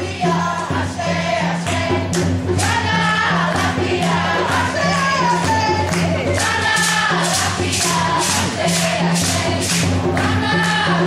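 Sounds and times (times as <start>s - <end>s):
group of voices singing: 0.0s - 11.0s
repeating drum beat: 0.0s - 11.0s
shakers rattling: 2.6s - 10.7s.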